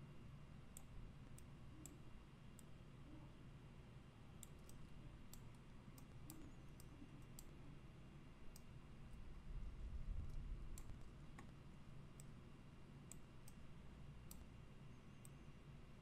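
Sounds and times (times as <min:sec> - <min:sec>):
low background hum: 0:00.0 - 0:16.0
computer mouse clicks: 0:00.7 - 0:02.0, 0:04.4 - 0:07.6, 0:08.5 - 0:08.8, 0:10.2 - 0:12.4, 0:13.0 - 0:14.6.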